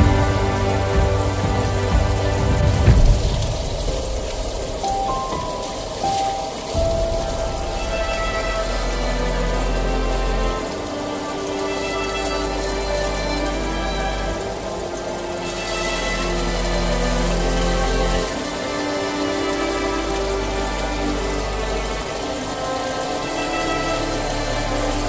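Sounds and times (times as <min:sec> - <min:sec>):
background music with held notes: 0:00.0 - 0:25.0.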